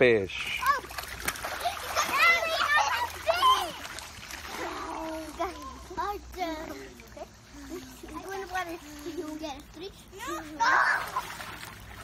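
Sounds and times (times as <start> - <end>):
water splashing in a pool: 0.0 - 12.0.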